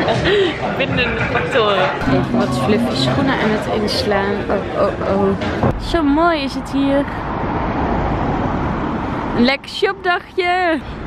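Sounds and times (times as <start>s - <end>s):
cars passing: 0.0s - 11.0s.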